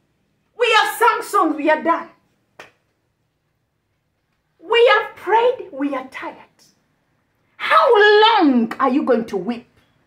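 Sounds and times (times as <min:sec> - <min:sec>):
woman speaking: 0:00.6 - 0:02.2, 0:04.6 - 0:06.8, 0:07.6 - 0:09.8.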